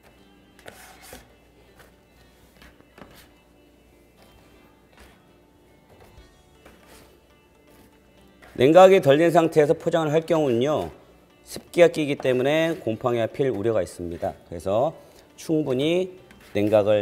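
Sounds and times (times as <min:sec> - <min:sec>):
faint background music: 0:00.0 - 0:17.0.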